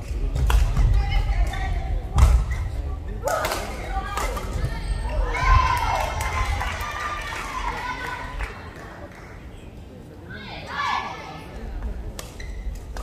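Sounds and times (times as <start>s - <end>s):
voices in a hall: 0.0s - 13.0s.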